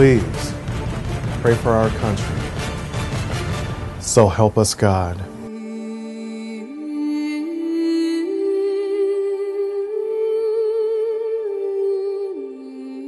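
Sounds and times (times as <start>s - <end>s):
slow music with held vibrato notes: 5.2s - 13.0s.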